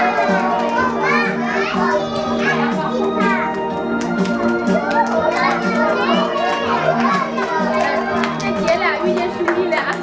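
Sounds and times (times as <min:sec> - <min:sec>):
young children's voices: 0:00.0 - 0:09.4
children's music with steady beat: 0:00.0 - 0:10.0.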